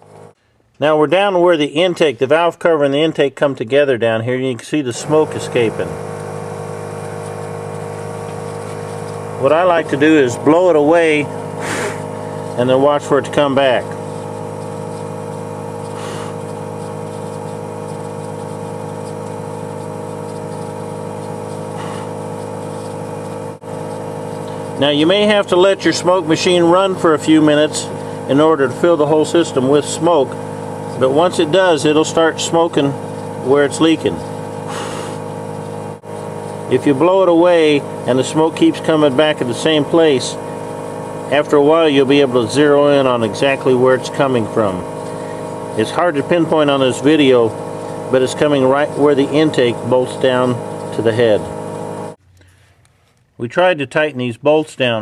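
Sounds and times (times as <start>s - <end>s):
smoke machine humming: 0.0s - 53.4s
air hissing: 5.0s - 53.0s.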